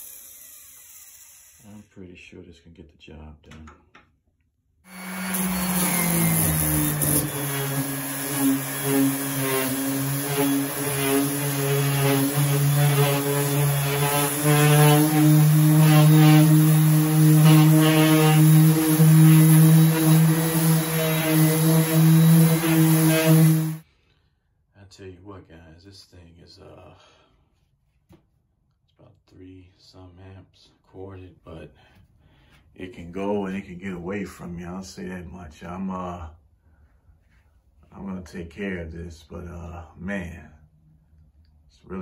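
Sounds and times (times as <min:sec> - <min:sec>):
orbital sander sanding: 0:04.9 - 0:23.8.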